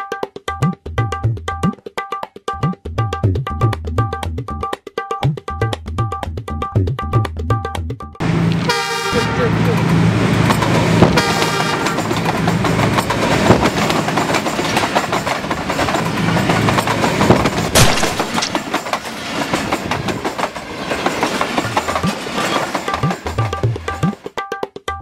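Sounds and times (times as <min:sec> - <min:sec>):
diesel train rumble: 0:08.2 - 0:24.2
train horn: 0:08.3 - 0:09.9, 0:11.1 - 0:12.2
wheels clattering on rails: 0:09.5 - 0:24.2
sharp clack: 0:11.8 - 0:19.1.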